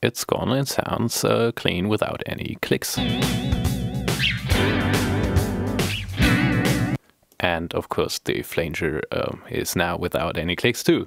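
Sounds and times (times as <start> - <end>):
music with wavering chorus effect: 3.0 - 7.0.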